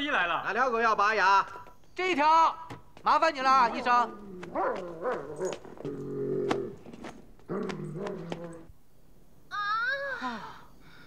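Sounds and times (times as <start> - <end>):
large dog vocalizing: 7.4 - 8.7.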